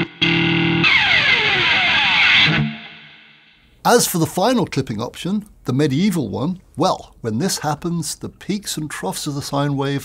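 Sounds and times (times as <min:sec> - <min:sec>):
pick scraping guitar strings: 0:00.0 - 0:03.0
distorted electric guitar: 0:00.0 - 0:03.6.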